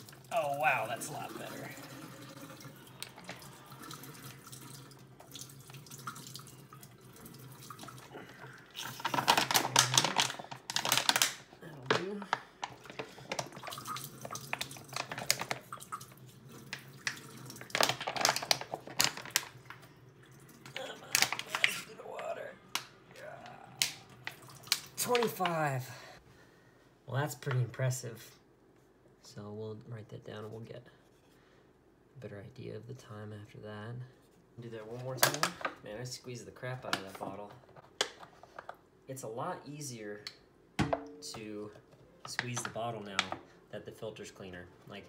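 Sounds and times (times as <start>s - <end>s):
water streaming into a steel sink: 0.0s - 9.1s, 13.5s - 18.0s
plastic bottle crinkling: 7.6s - 19.9s, 20.6s - 22.9s, 23.8s - 25.7s.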